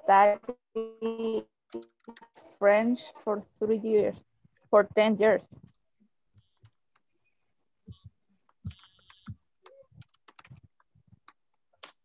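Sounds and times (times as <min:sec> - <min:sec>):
computer keyboard typing: 0:08.7 - 0:10.6, 0:11.2 - 0:12.0.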